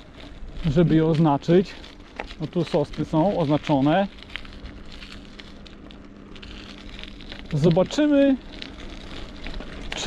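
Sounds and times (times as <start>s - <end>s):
faint steady hum: 0.0s - 10.0s
tyres rolling over gravel: 0.0s - 10.0s.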